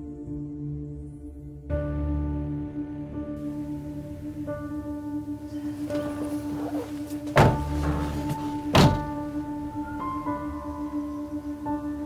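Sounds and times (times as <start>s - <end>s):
background music: 0.0s - 12.0s
car door shutting: 5.5s - 9.4s.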